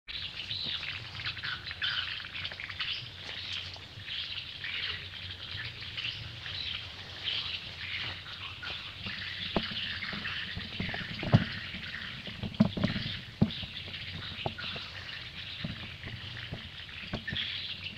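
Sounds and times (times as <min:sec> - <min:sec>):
small birds chirping: 0:00.1 - 0:17.9.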